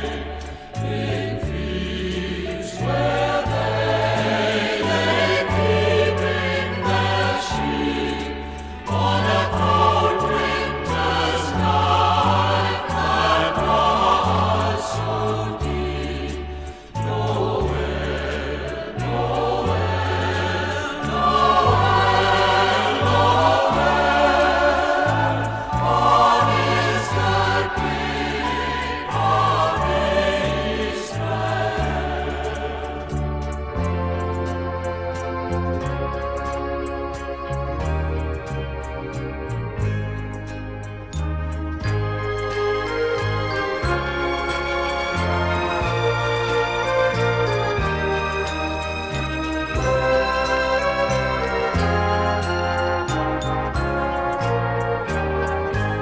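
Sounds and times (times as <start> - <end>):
bass line: 0.0 - 56.0
choir singing a carol: 0.0 - 56.0
orchestra playing: 16.7 - 56.0.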